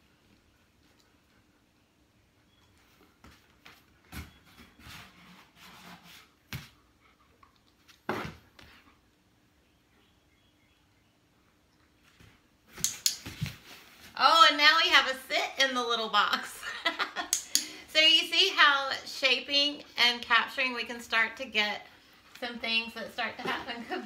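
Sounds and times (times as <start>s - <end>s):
woman laughing: 16.2s - 17.8s.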